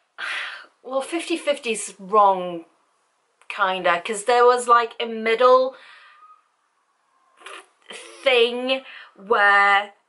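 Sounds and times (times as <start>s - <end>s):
woman speaking: 0.6s - 2.8s, 3.4s - 5.8s, 7.4s - 10.0s.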